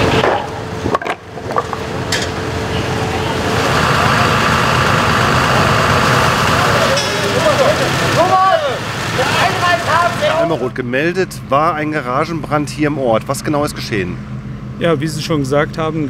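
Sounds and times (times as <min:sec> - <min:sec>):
fire engine pump running: 0:00.0 - 0:16.0
crew voices: 0:02.3 - 0:10.8.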